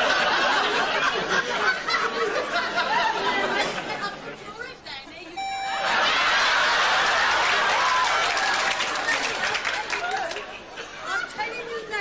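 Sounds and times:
woman's voice: 0:11.0 - 0:12.0.

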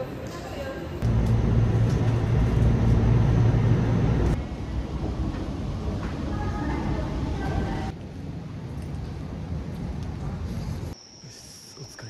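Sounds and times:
train rumble and hum: 0:01.0 - 0:10.9.

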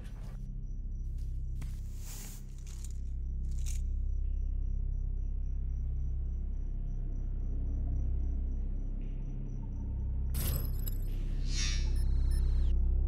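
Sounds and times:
steady low drone: 0:00.0 - 0:13.0.

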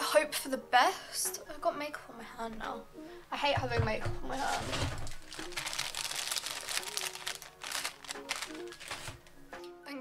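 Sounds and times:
background music: 0:00.0 - 0:10.0
hand rustling and rubbing: 0:04.4 - 0:09.4.

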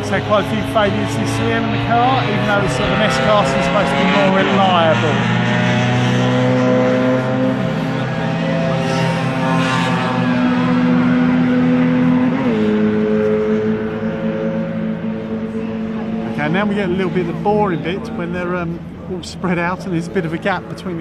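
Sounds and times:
race car engines running hard: 0:00.0 - 0:21.0.

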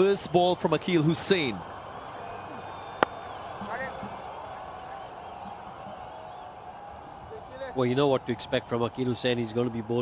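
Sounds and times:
stadium crowd: 0:00.0 - 0:10.0
cricket bat striking ball: 0:02.8 - 0:03.3.

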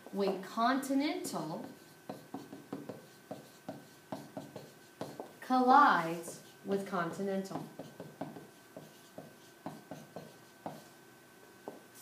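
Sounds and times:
marker pen writing on paper: 0:01.6 - 0:05.4, 0:07.6 - 0:10.9.

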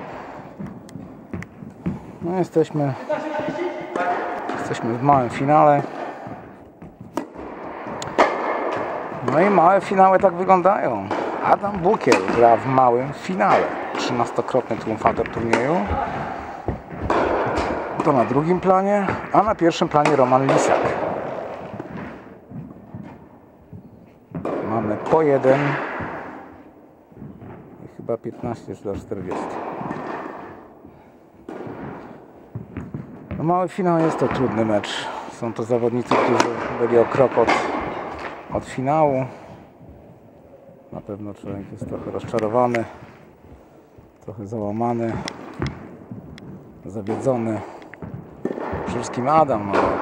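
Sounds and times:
tennis racket hitting ball: 0:00.3 - 0:02.4, 0:03.0 - 0:27.8, 0:28.4 - 0:35.0, 0:35.8 - 0:39.3, 0:44.9 - 0:50.0.

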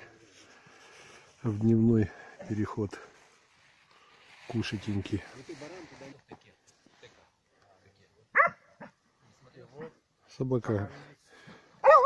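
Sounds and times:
dog barking: 0:08.3 - 0:09.0, 0:11.8 - 0:12.0.

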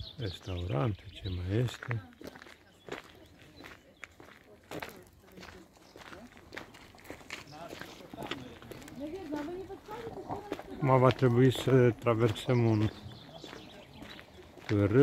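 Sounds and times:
faint voices: 0:00.0 - 0:15.0
footsteps on gravel: 0:00.0 - 0:15.0.

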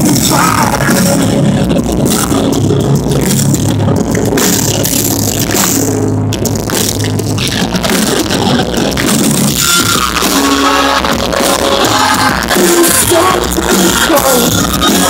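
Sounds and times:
pop-punk band playing: 0:00.0 - 0:15.0.

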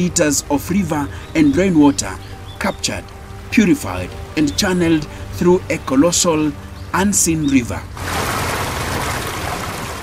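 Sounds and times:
rushing water: 0:00.0 - 0:10.0.

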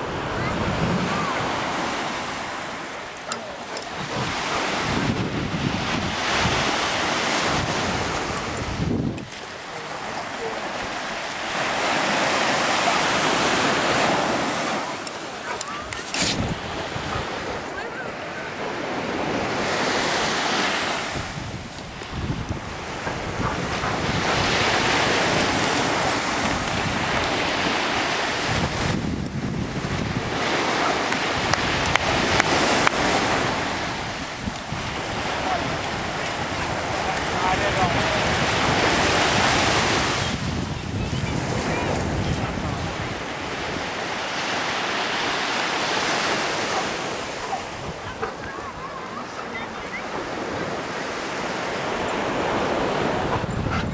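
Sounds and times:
wind buffeting microphone: 0:00.0 - 0:12.2, 0:15.4 - 0:53.9
surf breaking on beach: 0:00.0 - 0:53.7.

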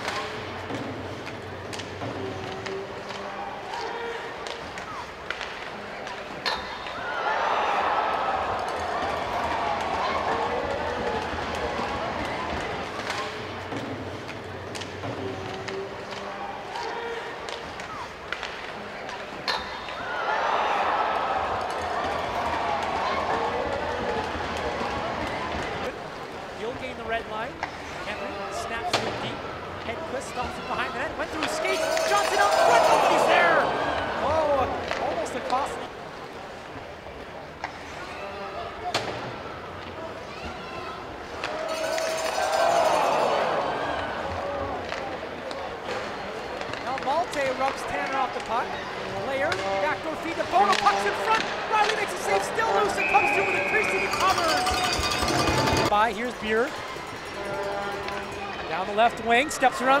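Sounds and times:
crowd cheering: 0:06.7 - 0:13.6, 0:19.1 - 0:25.9, 0:28.3 - 0:35.7, 0:38.2 - 0:49.2, 0:49.8 - 1:00.0.

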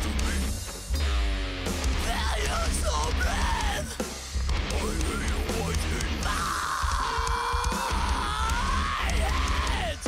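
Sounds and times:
metalcore music: 0:00.0 - 0:10.0
long held scream: 0:06.2 - 0:10.0.

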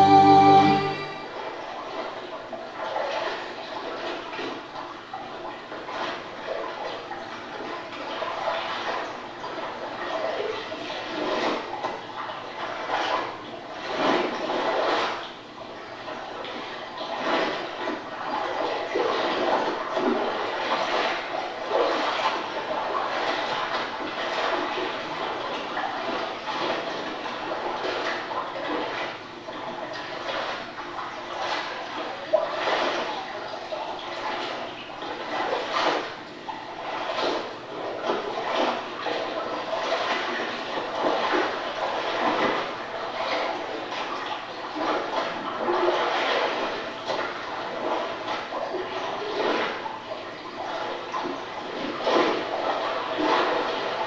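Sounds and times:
water splashing and sloshing: 0:00.0 - 0:54.0.

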